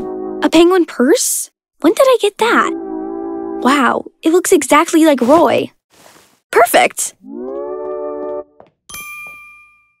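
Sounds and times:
bell-like ding: 8.9s - 10.0s.

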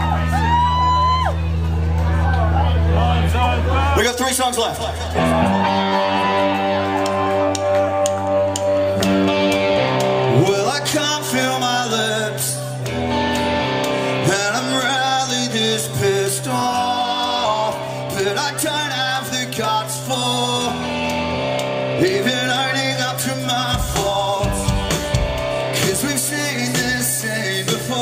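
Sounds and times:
electric guitar chords: 0.0s - 28.0s
man singing: 10.3s - 12.8s, 14.1s - 21.2s, 21.9s - 28.0s.

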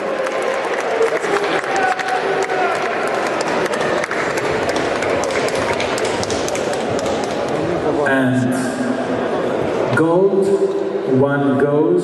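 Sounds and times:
audience applauding: 0.0s - 7.6s
voices in crowd: 0.0s - 12.0s.

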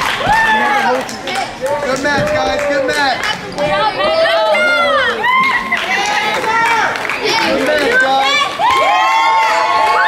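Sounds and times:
children shouting and cheering: 3.6s - 10.0s.

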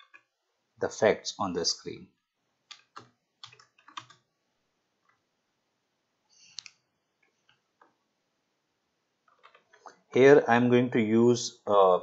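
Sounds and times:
faint keyboard keystrokes: 2.7s - 4.3s, 9.3s - 9.9s.

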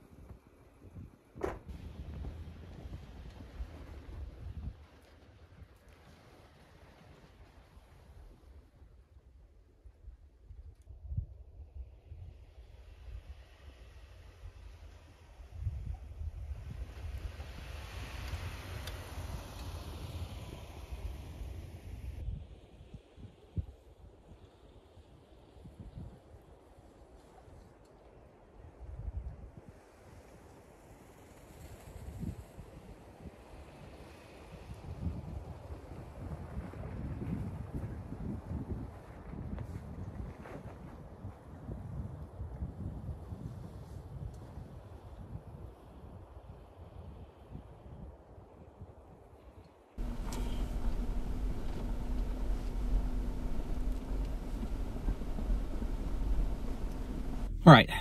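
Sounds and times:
car driving through snow: 16.9s - 22.0s, 50.0s - 57.5s
wind gusting on microphone: 31.8s - 48.8s.

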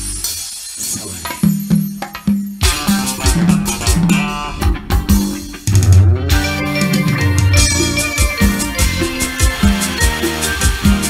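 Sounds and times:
guitar slide: 2.6s - 11.0s
live band music: 2.6s - 11.0s.

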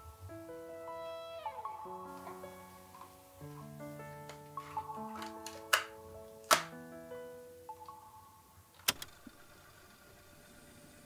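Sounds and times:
soft intro music: 0.0s - 8.7s.

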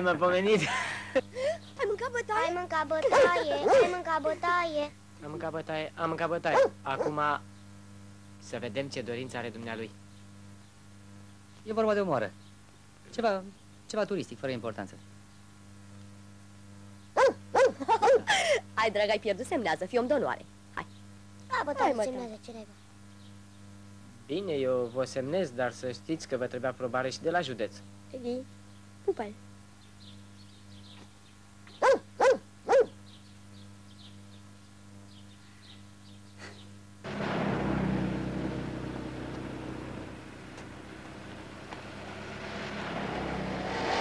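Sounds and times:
low mains hum: 0.0s - 43.6s
dog barking: 3.0s - 4.0s, 6.5s - 7.2s, 17.2s - 18.3s, 31.8s - 33.0s.

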